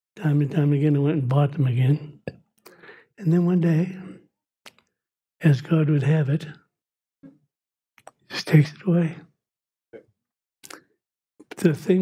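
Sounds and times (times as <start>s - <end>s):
man speaking: 0.2s - 2.3s, 3.2s - 4.2s, 5.4s - 6.6s, 8.3s - 9.2s, 11.4s - 12.0s
short breath: 2.7s - 3.1s
faint mouth click: 8.0s - 8.2s, 10.0s - 11.6s.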